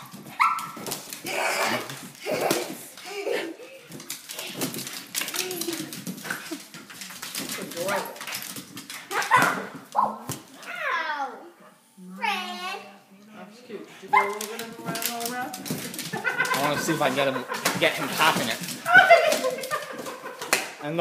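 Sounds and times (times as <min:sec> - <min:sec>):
dog barking: 0:00.4 - 0:00.8, 0:14.1 - 0:14.5.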